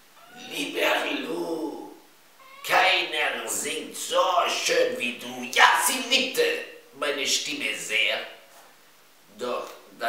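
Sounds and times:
wavering pitched male voice: 0.3 - 2.0, 2.6 - 8.2
person speaking: 0.3 - 8.4.

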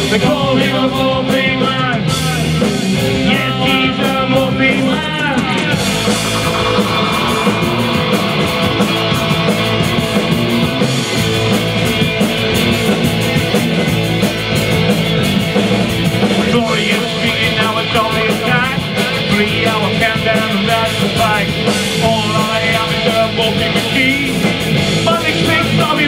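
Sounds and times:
person singing: 0.0 - 8.5, 16.4 - 26.0
drums: 0.0 - 26.0
electric guitars: 0.0 - 26.0.

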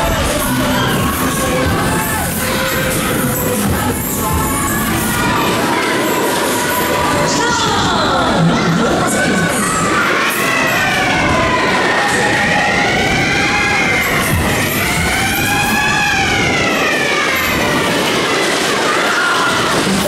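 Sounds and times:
amusement ride running noise: 0.0 - 20.0
wailing siren-like tone: 10.6 - 18.1.

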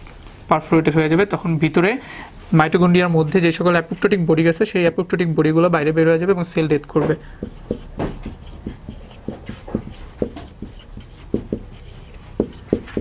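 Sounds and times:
marker squeaking on whiteboard: 6.9 - 13.0.

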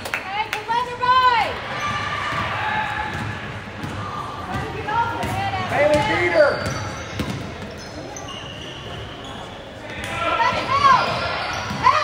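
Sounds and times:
basketball court noise: 0.0 - 12.0.

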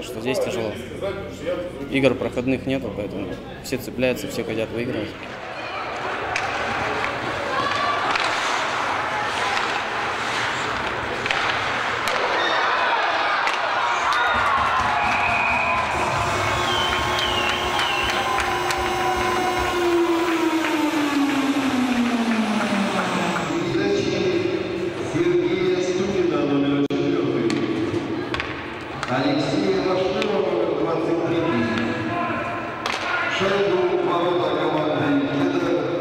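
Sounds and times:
crowd noise with voices: 0.0 - 36.0
long tone sliding down in pitch: 15.6 - 25.1.

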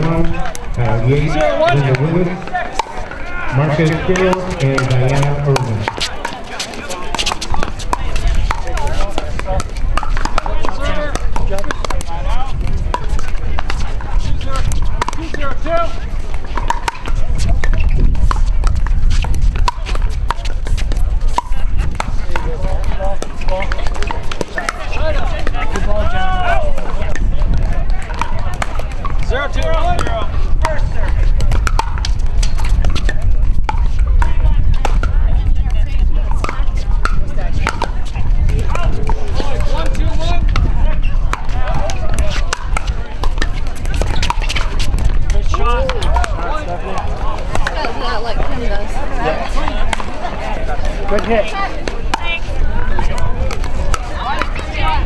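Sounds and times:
voices talking: 0.0 - 55.0
paddles popping against plastic ball: 3.8 - 15.4, 27.1 - 35.1, 41.3 - 48.0.

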